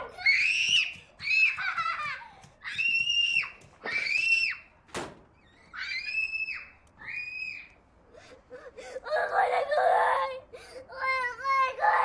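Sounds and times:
high-pitched screams: 0:05.6 - 0:07.7.

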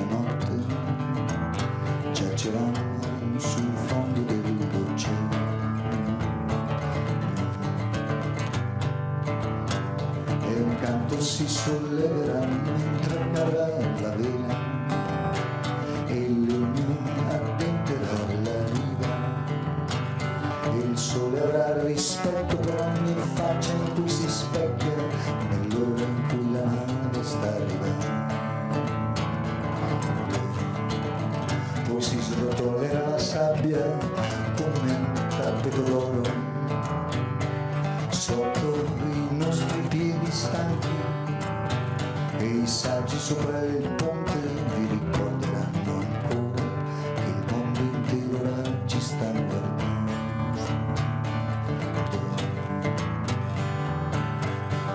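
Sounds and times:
guitar playing: 0:00.0 - 0:54.9.

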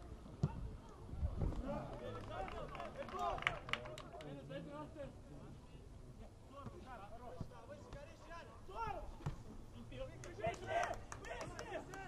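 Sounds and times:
outdoor ambience: 0:00.0 - 0:12.0.

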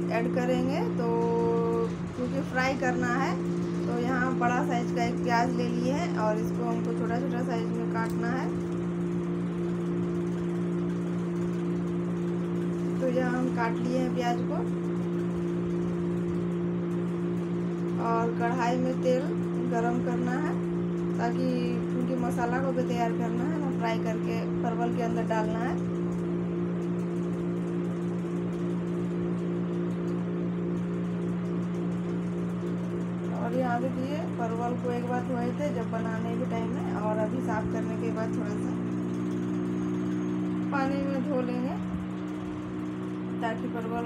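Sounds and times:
woman's voice: 0:00.0 - 0:08.6, 0:12.9 - 0:14.8, 0:17.9 - 0:25.9, 0:33.3 - 0:39.0, 0:40.7 - 0:41.8, 0:43.4 - 0:44.0
steady low two-tone hum: 0:00.0 - 0:44.0.

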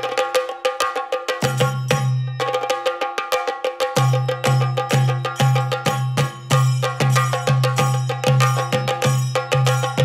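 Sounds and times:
ringing metallic beat: 0:00.0 - 0:10.0.

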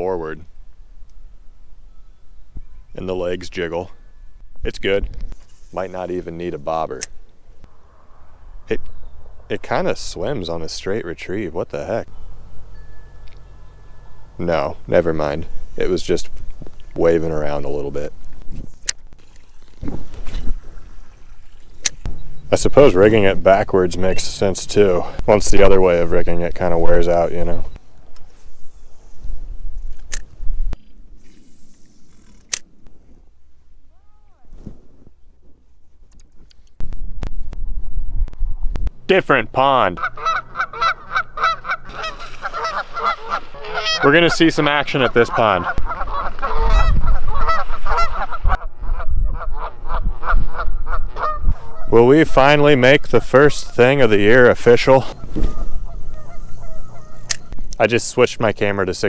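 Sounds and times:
wind rumble: 0:07.4 - 0:10.7, 0:34.5 - 0:39.1, 0:45.7 - 0:52.6
wind rumbling on microphone: 0:15.4 - 0:23.7, 0:26.2 - 0:33.4, 0:34.4 - 0:39.1, 0:45.6 - 0:53.3, 0:54.4 - 0:57.8
geese honking: 0:39.9 - 0:57.6.

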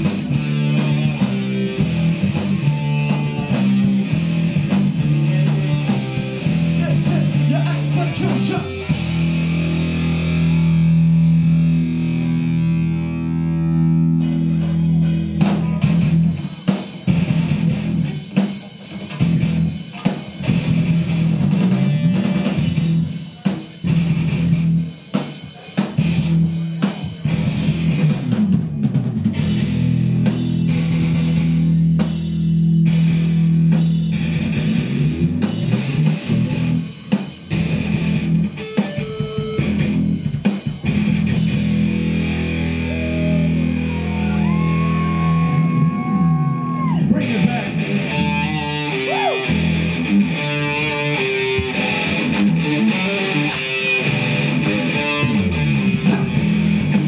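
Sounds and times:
heavy rock band playing: 0:00.0 - 0:57.0.

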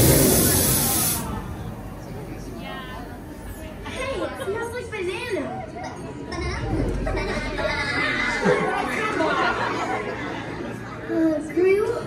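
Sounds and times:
loud hissing air spray: 0:00.0 - 0:01.5.

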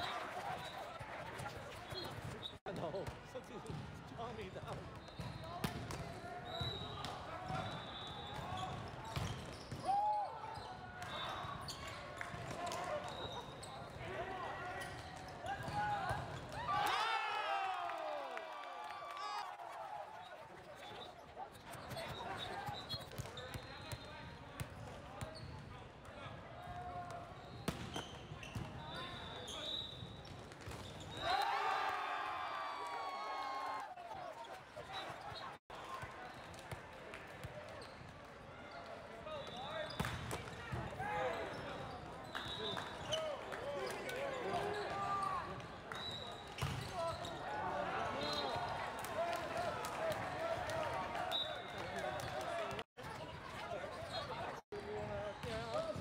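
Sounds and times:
players shouting and chatting: 0:00.0 - 0:30.0, 0:31.1 - 0:37.9, 0:38.5 - 0:56.0
sneakers squeaking on court floor: 0:00.5 - 0:03.1, 0:04.5 - 0:09.8, 0:10.4 - 0:14.0, 0:20.2 - 0:25.8, 0:27.3 - 0:31.3, 0:38.7 - 0:48.8, 0:51.4 - 0:56.0.

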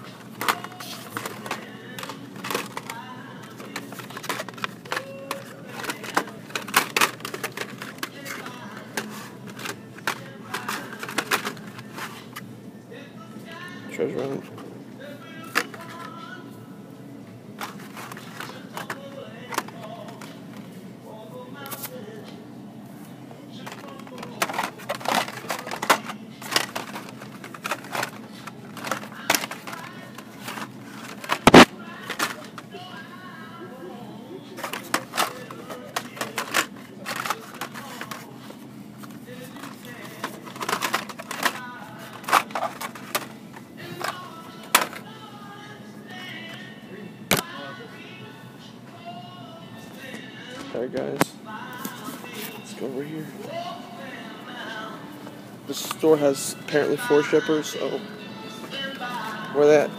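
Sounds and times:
plastic cards clacking: 0:00.3 - 0:12.4, 0:15.4 - 0:16.2, 0:17.6 - 0:20.6, 0:23.6 - 0:32.6, 0:34.6 - 0:45.0, 0:47.3 - 0:47.5
background music: 0:39.3 - 0:59.9.

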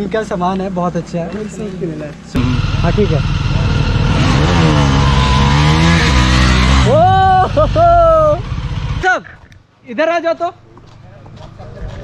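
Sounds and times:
motorcycles revving past: 0:02.4 - 0:07.0.

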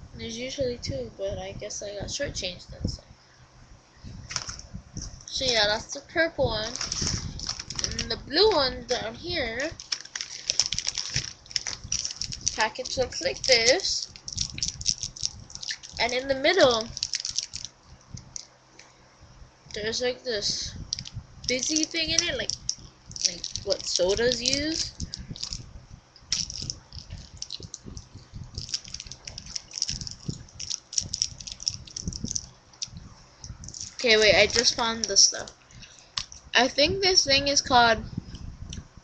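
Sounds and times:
plastic wrapper crinkling: 0:04.3 - 0:04.6, 0:06.5 - 0:18.5, 0:20.9 - 0:36.5.

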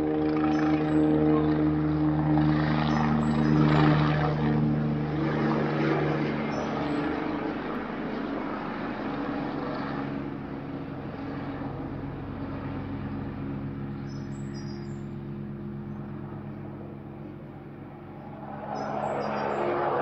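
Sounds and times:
helicopter flying overhead: 0:00.0 - 0:20.0.

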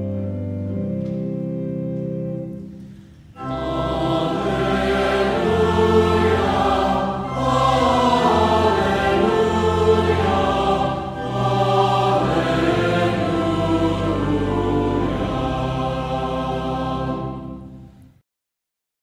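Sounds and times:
choir singing: 0:03.4 - 0:18.0.

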